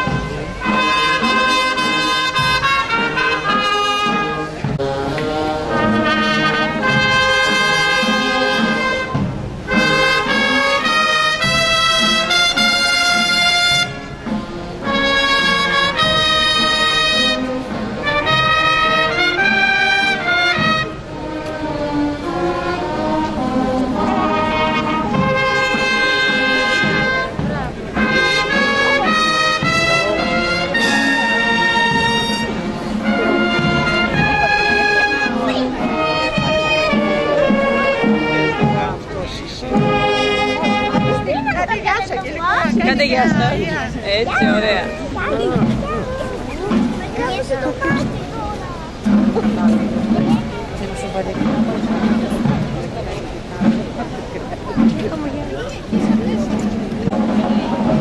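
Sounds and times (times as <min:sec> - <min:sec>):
brass band playing long notes: 0:00.0 - 0:58.0.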